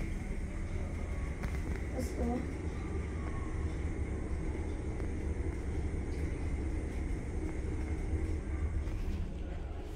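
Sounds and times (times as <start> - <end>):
elevator hum and rumble: 0.0 - 9.9.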